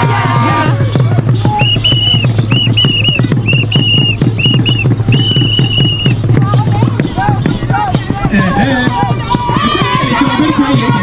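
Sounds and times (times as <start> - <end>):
fast steady drumbeat: 0.0 - 11.0
whistle blasts: 1.5 - 6.2.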